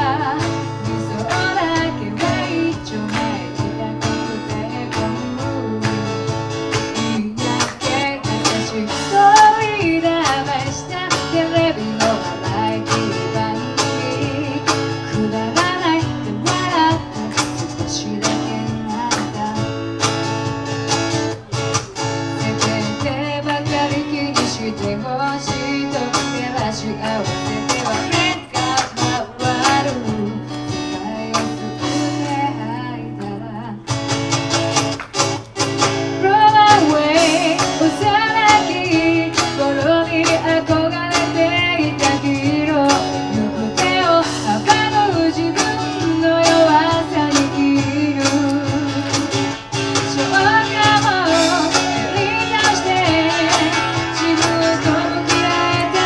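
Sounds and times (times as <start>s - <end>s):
woman singing: 0.0s - 20.5s, 21.5s - 34.5s, 35.8s - 56.0s
cajon percussion: 0.0s - 56.0s
electric guitar: 0.0s - 56.0s
strummed acoustic guitar: 0.0s - 56.0s.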